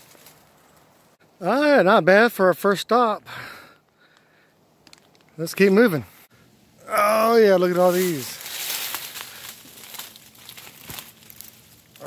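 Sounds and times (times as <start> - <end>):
leaves and twigs rustling: 0.0 - 1.2, 4.0 - 12.0
twig snapping: 4.1 - 5.4, 8.4 - 12.0.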